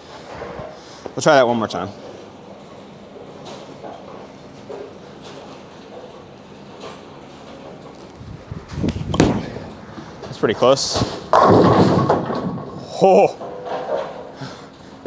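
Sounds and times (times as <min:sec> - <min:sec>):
bowling ball rolling rumble: 0:08.2 - 0:14.4
bowling ball thud on lane: 0:09.1 - 0:09.7, 0:11.1 - 0:12.8.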